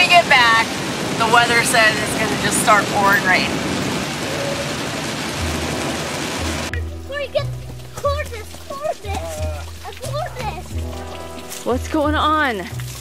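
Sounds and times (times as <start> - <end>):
heavy rain on car: 0.0 - 13.0
music with stepping bass: 5.4 - 13.0.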